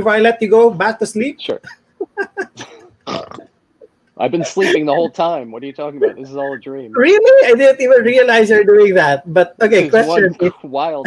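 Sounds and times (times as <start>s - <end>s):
man laughing: 1.5s - 3.0s, 4.2s - 7.4s, 9.9s - 10.8s.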